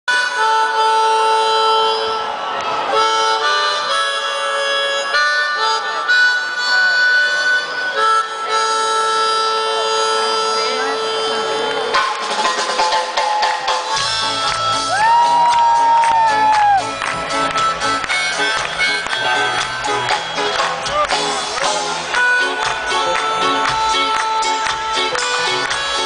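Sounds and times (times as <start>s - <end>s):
amplified harmonica playing: 0.1s - 12.9s, 13.9s - 26.0s.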